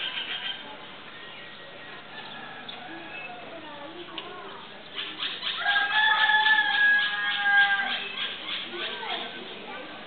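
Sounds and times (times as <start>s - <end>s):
rooster crowing: 5.6s - 8.1s.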